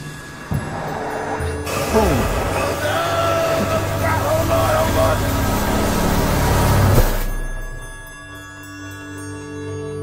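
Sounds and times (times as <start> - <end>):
soft chiming music: 0.0 - 4.7, 7.2 - 10.0.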